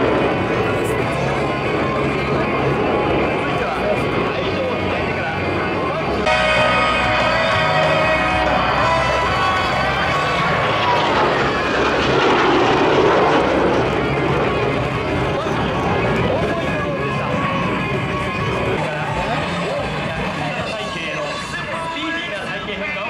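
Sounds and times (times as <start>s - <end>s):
jet plane passing: 0.0s - 23.0s
music: 0.0s - 23.0s.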